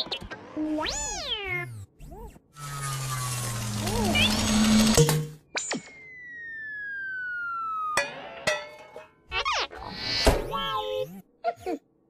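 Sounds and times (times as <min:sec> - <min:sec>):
droid whirring: 0:00.0 - 0:07.9
falling whistle: 0:05.5 - 0:08.0.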